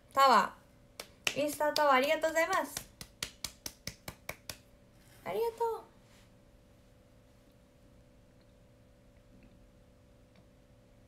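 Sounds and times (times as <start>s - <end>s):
sharp taps or claps: 1.0s - 4.7s.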